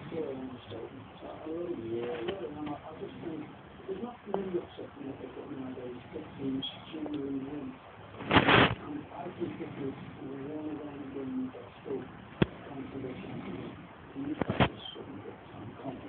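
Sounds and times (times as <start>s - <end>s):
short loud burst of noise: 8.2s - 8.8s.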